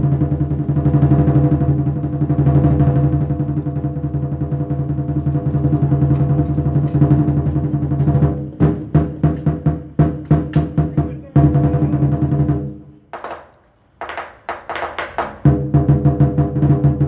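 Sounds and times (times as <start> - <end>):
fast drum roll: 0.0 - 13.4, 14.0 - 17.0.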